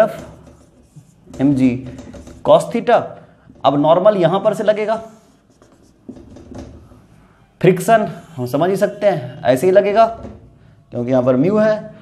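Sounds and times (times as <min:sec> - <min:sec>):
marker drawing on whiteboard: 0:00.0 - 0:10.4.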